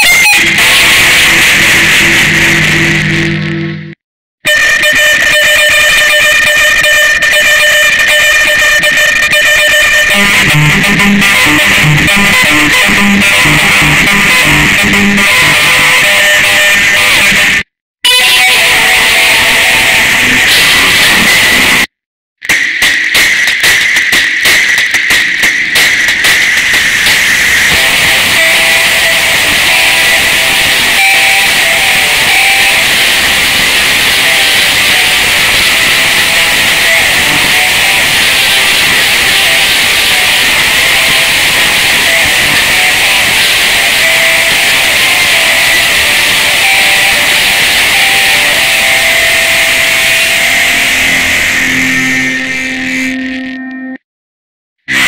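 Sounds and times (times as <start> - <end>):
distorted jingle noise: 0.0 - 21.9, 22.5 - 54.0
high whine: 0.0 - 54.0.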